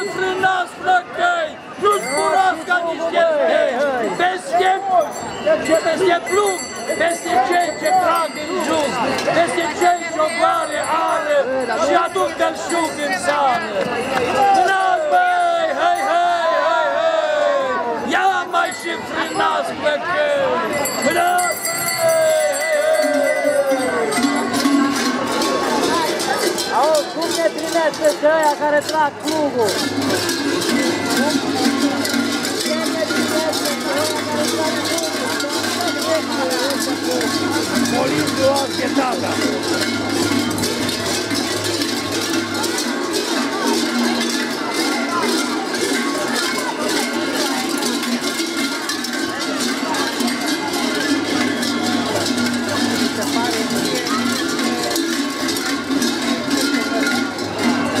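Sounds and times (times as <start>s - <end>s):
large bells clanging: 0.0s - 0.9s, 1.6s - 16.6s, 17.2s - 58.0s
crowd voices: 0.0s - 58.0s
music: 20.8s - 58.0s.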